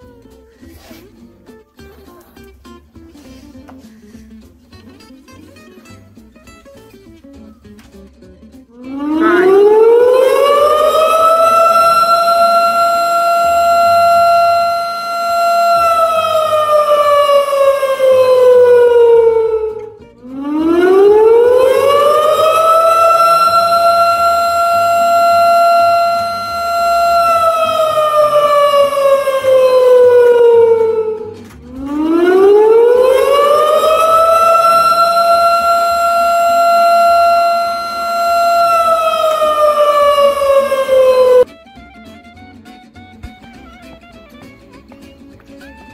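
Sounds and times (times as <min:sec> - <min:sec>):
wailing siren: 0:08.8 - 0:41.5.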